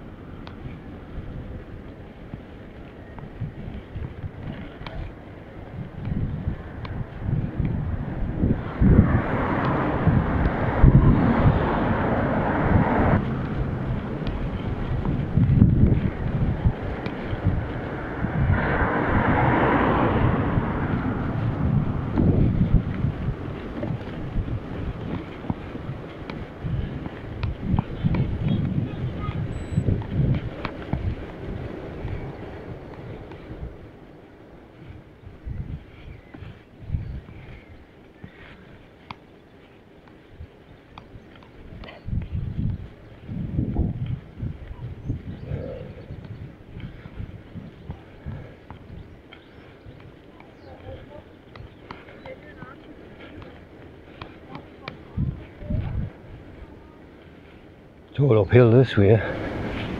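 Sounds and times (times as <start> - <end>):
tyre and road rumble: 0.0 - 59.9
wind buffeting microphone: 0.0 - 59.9.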